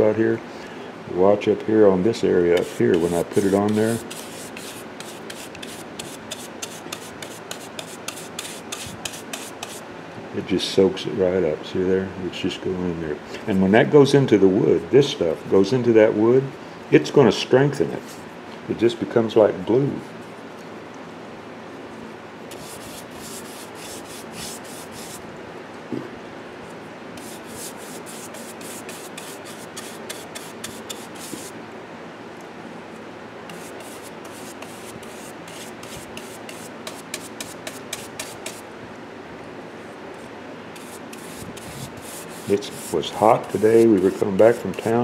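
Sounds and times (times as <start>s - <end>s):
air conditioner and fan hum: 0.0s - 45.0s
paint brush scrubbing wood: 2.6s - 9.8s, 22.5s - 25.2s, 27.2s - 31.6s, 33.5s - 38.6s, 40.8s - 45.0s.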